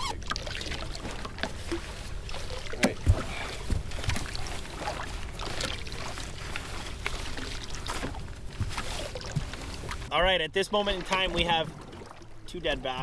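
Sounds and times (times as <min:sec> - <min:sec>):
water lapping against boat hull: 0:00.0 - 0:13.0.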